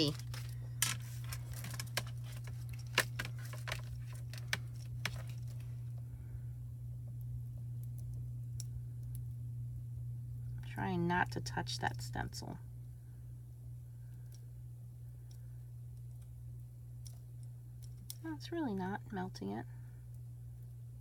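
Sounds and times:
plastic and foil clicks and crinkles: 0.0 - 6.0
steady low hum: 0.0 - 21.0.

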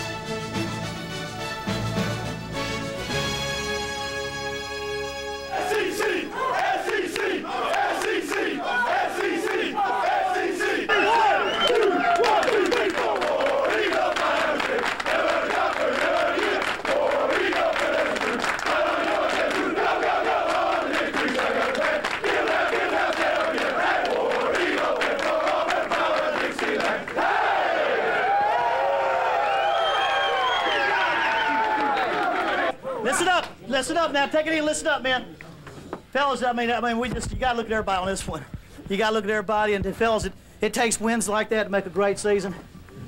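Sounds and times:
music: 0.0 - 6.3
crowd shouting and cheering: 5.5 - 33.4
hands clapping: 5.7 - 8.5, 11.6 - 27.2.

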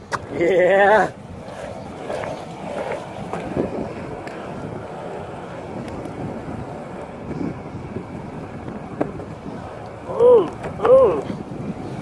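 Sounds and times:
skateboard wheels rolling on asphalt: 0.0 - 12.0
wind on microphone: 0.0 - 12.0.

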